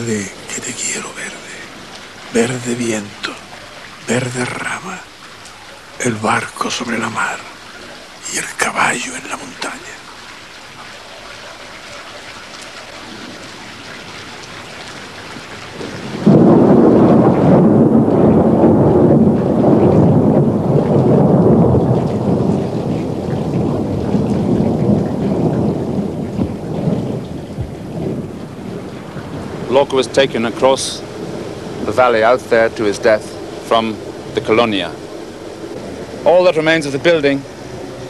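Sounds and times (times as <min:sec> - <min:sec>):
steady rain falling: 0:00.0 - 0:38.0
thunder rumbling: 0:12.4 - 0:38.0.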